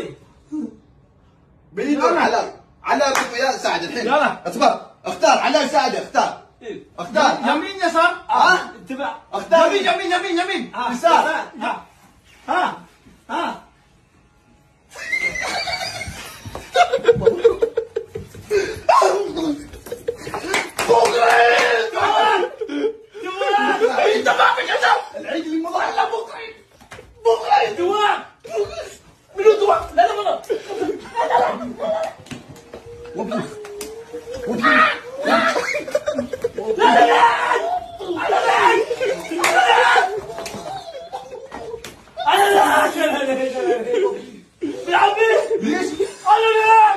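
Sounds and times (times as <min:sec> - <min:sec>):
hearty laughter: 0:15.1 - 0:20.8, 0:30.5 - 0:38.1, 0:38.7 - 0:42.2
loud falling cry: 0:31.2 - 0:43.3.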